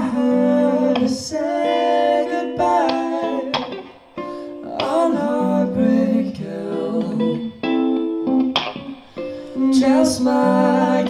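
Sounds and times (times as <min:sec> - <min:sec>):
male singer holding notes: 0:00.0 - 0:03.7, 0:04.6 - 0:07.4, 0:09.6 - 0:11.0
rock band with electric guitar: 0:06.9 - 0:09.6.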